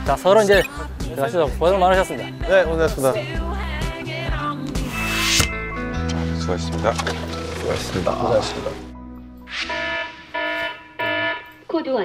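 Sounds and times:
electronic alarm beeping: 9.5 - 11.8.

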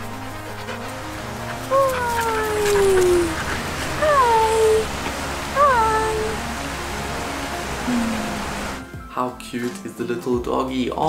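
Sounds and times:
puppy whining: 0.4 - 6.4.

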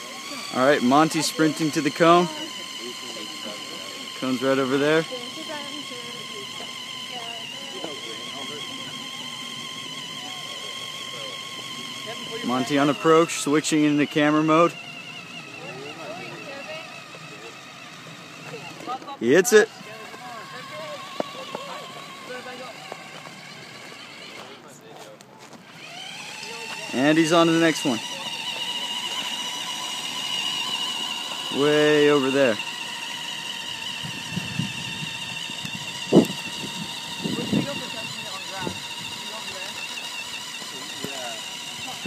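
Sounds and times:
faint voices: 0.0 - 42.0
rc car motor whine: 0.0 - 42.0.

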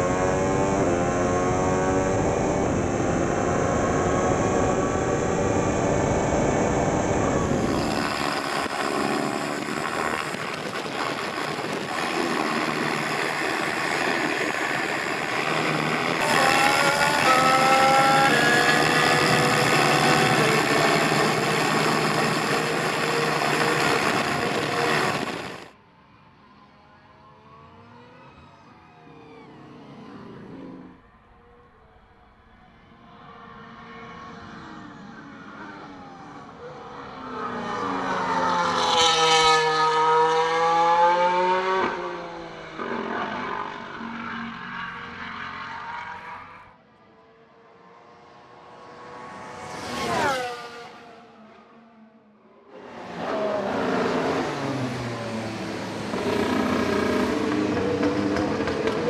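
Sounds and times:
racing car engine at speed: 0.0 - 59.0
racing car passing by: 32.6 - 59.0.

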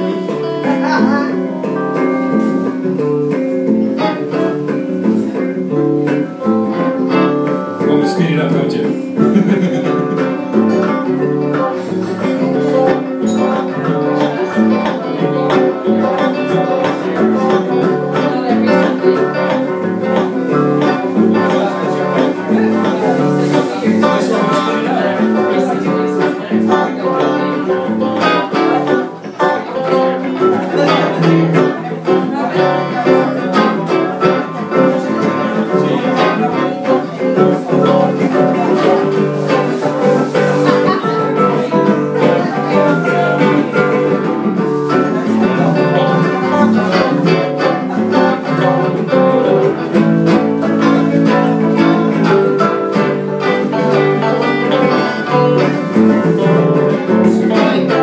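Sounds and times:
electric guitar band playing: 0.0 - 58.0.

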